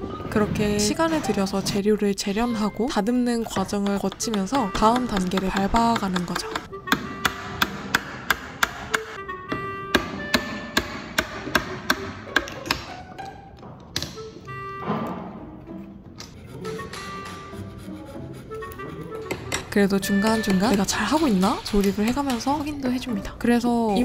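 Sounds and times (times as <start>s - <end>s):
background music: 0.0s - 24.0s
mallet striking chisel: 3.4s - 13.0s, 16.6s - 17.6s, 19.2s - 22.7s.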